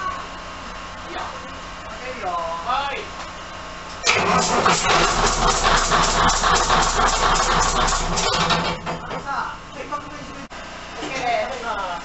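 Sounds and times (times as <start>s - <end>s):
diesel engine running loudly: 4.0s - 10.4s.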